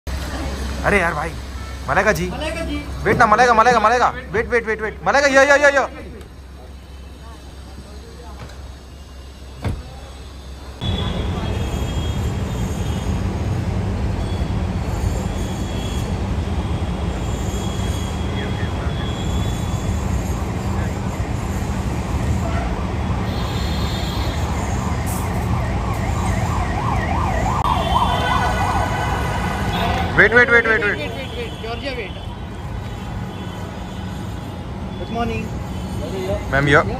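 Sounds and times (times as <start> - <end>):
city street rumble: 0.0 - 36.9.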